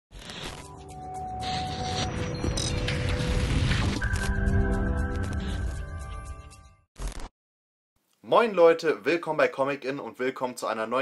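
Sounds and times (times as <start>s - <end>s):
music: 0.6s - 6.9s.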